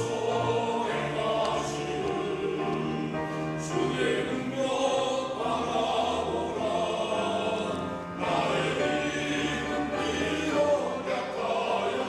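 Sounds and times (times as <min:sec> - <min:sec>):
men's choir singing: 0:00.0 - 0:12.0.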